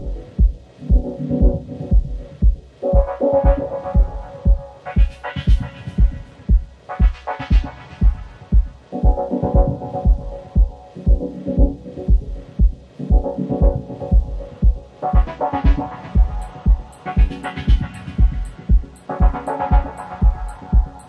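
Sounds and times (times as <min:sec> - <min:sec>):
kick drum: 0:00.0 - 0:21.0
hi-hats: 0:01.9 - 0:13.3, 0:14.2 - 0:21.0.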